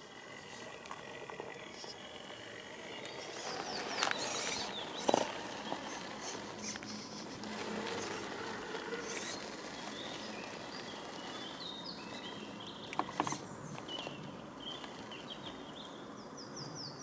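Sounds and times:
tyres crawling over rock: 0.0 - 15.6
small electric motor whining: 0.0 - 15.8.

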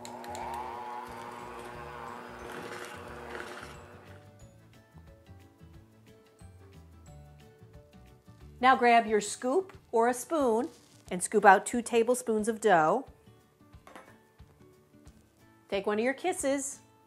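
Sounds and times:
electric hand mixer whining: 0.0 - 4.2
soft background music: 0.4 - 17.0.

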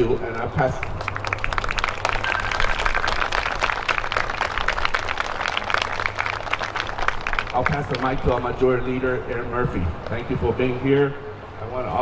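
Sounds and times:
crowd applauding: 0.3 - 8.5.

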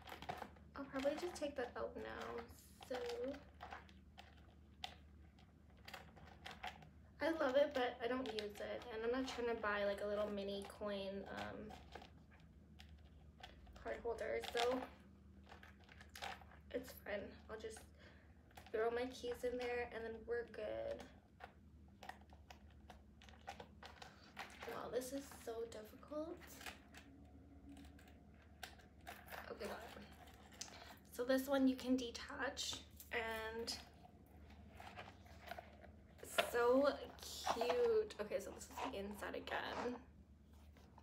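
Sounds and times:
faint clicks and rustles: 0.0 - 41.0.

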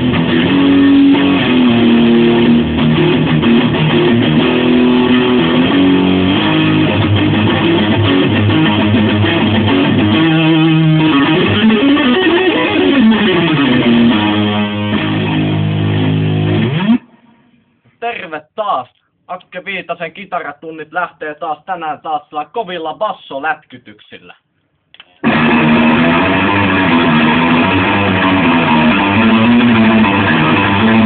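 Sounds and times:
fast loud electric guitar: 0.0 - 17.2, 25.2 - 31.0.

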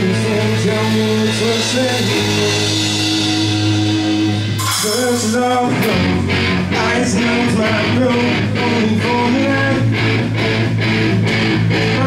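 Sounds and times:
rock band playing: 0.0 - 12.0
cymbal crash: 2.0 - 6.0.

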